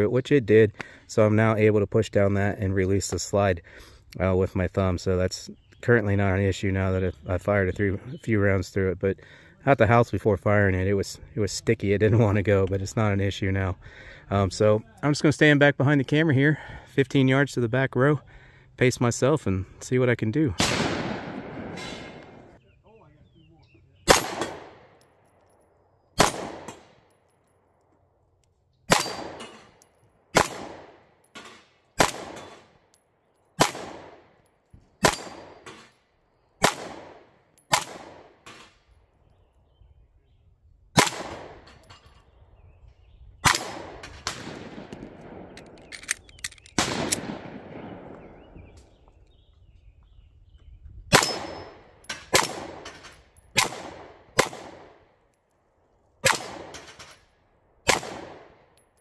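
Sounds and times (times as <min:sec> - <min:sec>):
pistol shots with echo: 0:20.6 - 0:22.5, 0:24.0 - 0:25.0, 0:26.2 - 0:27.1, 0:28.9 - 0:32.8, 0:33.6 - 0:34.4, 0:35.0 - 0:35.9, 0:36.6 - 0:38.6, 0:41.0 - 0:41.7, 0:43.4 - 0:45.8, 0:46.8 - 0:48.8, 0:51.1 - 0:52.9, 0:53.5 - 0:55.1, 0:56.2 - 0:56.9, 0:57.8 - 0:58.8
bullets clanging on steel targets: 0:28.9 - 0:30.1, 0:35.0 - 0:36.0, 0:41.6 - 0:42.3, 0:51.2 - 0:53.7.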